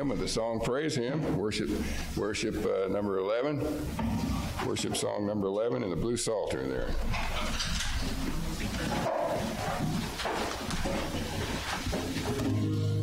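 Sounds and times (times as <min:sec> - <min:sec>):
crowd shuffling and rustling: 0:06.8 - 0:13.0.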